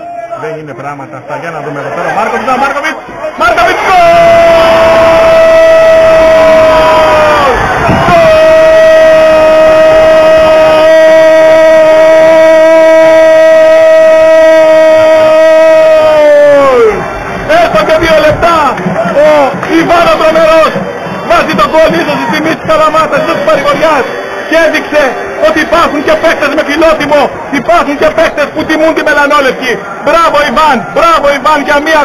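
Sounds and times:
excited talking: 0:00.0 - 0:10.8, 0:15.1 - 0:32.0
man shouting long goal call: 0:03.4 - 0:17.0.

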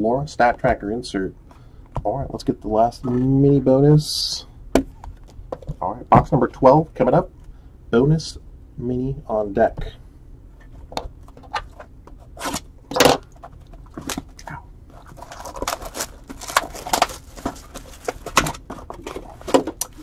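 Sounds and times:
plastic wrap crinkling: 0:13.2 - 0:20.0.

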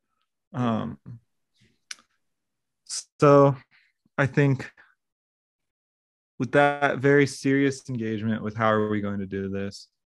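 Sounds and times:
man speaking: 0:00.6 - 0:01.2, 0:02.9 - 0:04.8, 0:06.4 - 0:10.0.

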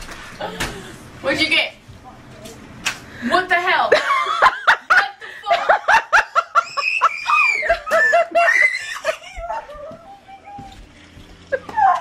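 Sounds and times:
woman laughing: 0:03.9 - 0:10.8, 0:11.5 - 0:12.0
woman's high cry: 0:06.6 - 0:10.8, 0:11.6 - 0:12.0.

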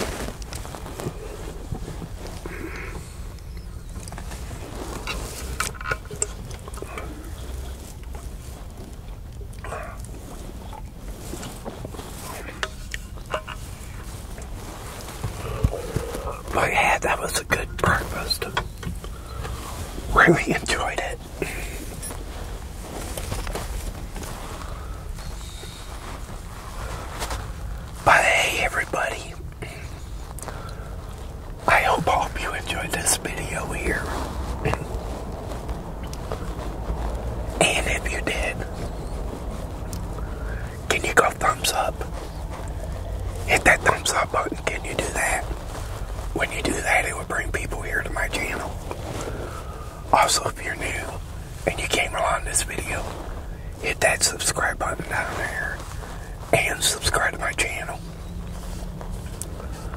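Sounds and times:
man whispering: 0:00.0 - 0:03.4, 0:04.2 - 0:08.6, 0:09.5 - 0:36.7, 0:37.4 - 0:39.0, 0:39.6 - 0:58.7
low steady rumble: 0:00.0 - 0:59.9.

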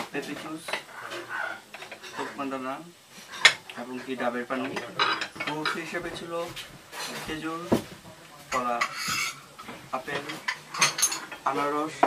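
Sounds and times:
tableware clinking: 0:04.6 - 0:06.0, 0:08.5 - 0:12.0.

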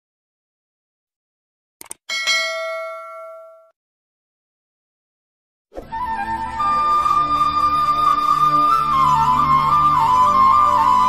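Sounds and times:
notification bell ding: 0:02.1 - 0:03.7.

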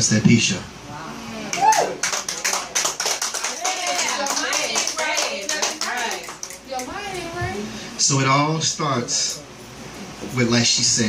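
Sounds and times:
audience applauding: 0:01.5 - 0:07.3.

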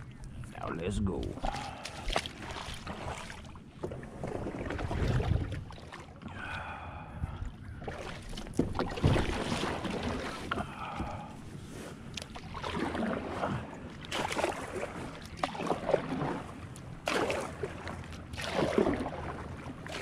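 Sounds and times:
paddle strokes through water: 0:01.2 - 0:20.0.

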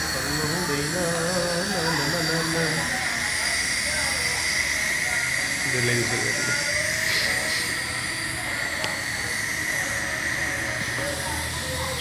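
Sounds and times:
dental equipment hiss: 0:00.0 - 0:12.0
high whistle-like tone: 0:01.7 - 0:10.8.

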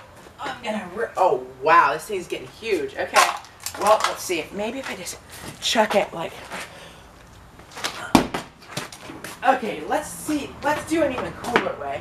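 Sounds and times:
plastic bottle thumping ground: 0:07.8 - 0:09.1.

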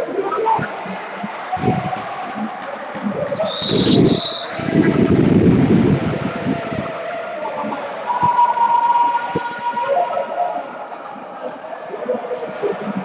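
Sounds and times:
people shouting: 0:00.0 - 0:13.0
high whistle blast: 0:03.4 - 0:04.6.

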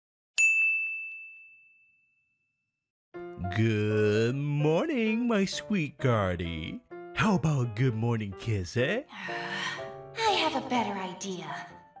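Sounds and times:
bright bell ding: 0:00.4 - 0:02.5.

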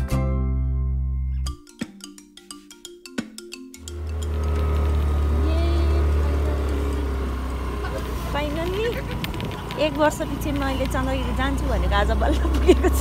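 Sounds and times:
plucked background music: 0:00.0 - 0:06.9
wind and road noise: 0:03.8 - 0:13.0.

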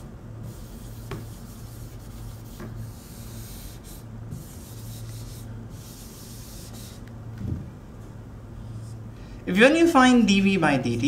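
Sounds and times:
duster rubbing on whiteboard: 0:00.4 - 0:07.1.

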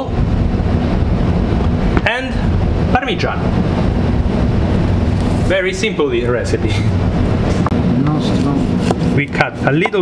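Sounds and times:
low rumble: 0:00.0 - 0:08.3.

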